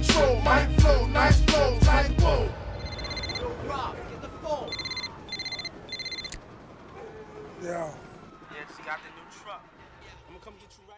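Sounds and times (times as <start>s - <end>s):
high electronic beep: 2.8s - 3.4s, 4.7s - 6.4s.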